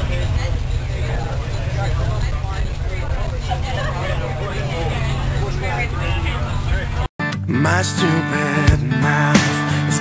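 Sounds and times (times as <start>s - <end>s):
bus engine and road drone: 0.0s - 7.1s
passengers chattering: 0.0s - 7.1s.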